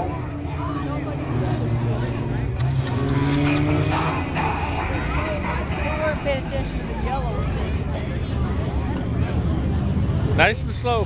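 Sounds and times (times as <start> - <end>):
race car engines running: 0.0 - 11.0
voices: 0.0 - 11.0.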